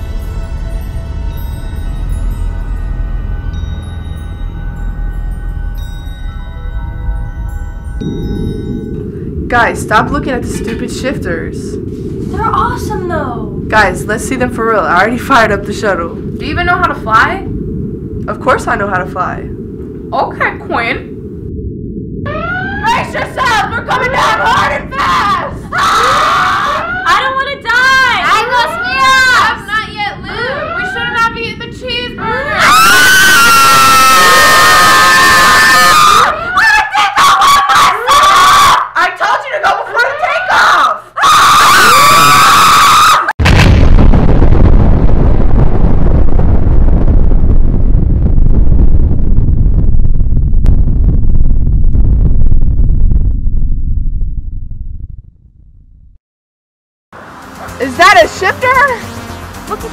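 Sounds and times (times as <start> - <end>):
deep explosion rumble: 0.0 - 36.6, 41.8 - 56.2, 57.2 - 59.9
people screaming: 22.3 - 29.6, 30.2 - 31.2, 32.2 - 39.0, 40.2 - 43.5.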